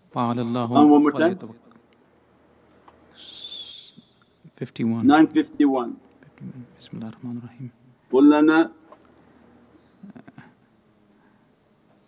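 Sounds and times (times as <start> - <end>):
high whistle-like tone: 3.2 - 4.4.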